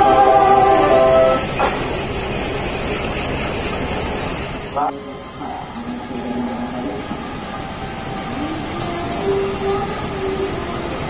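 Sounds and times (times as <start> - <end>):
train rumbling on rails: 0.0 - 11.0.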